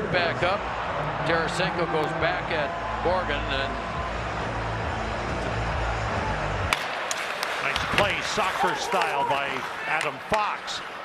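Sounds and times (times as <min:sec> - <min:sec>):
arena crowd murmur: 0:07.6 - 0:10.4.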